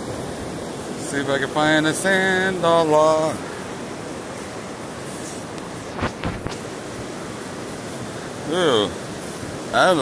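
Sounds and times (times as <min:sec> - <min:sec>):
shallow shore waves: 0:00.0 - 0:10.0
wind noise on microphone: 0:03.6 - 0:08.3.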